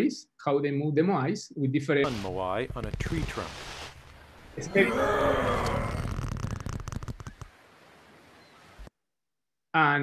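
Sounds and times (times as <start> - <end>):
taut rope creaking: 2.1 - 4.1, 4.7 - 7.6.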